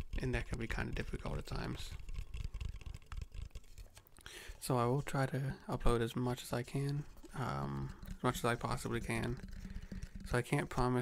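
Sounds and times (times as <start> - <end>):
fingers tapping on object: 0.0 - 4.0, 7.8 - 10.7.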